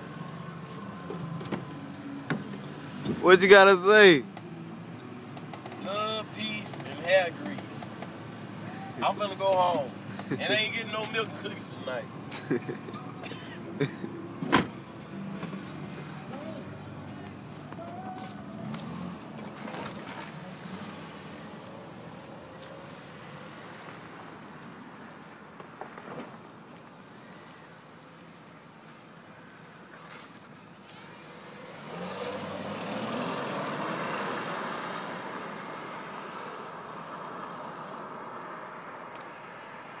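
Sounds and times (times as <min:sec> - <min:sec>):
car passing by: 0:17.4 - 0:24.2, 0:30.1 - 0:39.8.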